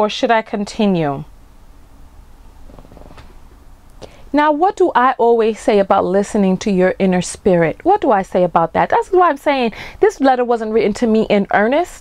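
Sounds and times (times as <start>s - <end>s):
low room rumble: 0.2s - 11.8s.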